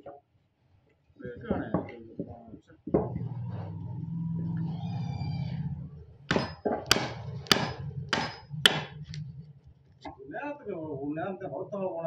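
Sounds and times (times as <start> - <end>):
low steady hum: 1.2 - 12.0
mallet striking chisel: 6.3 - 9.2.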